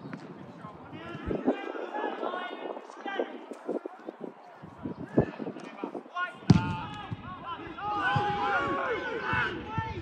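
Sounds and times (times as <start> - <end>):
players shouting: 5.1 - 10.0
football kick thump: 6.5 - 7.2.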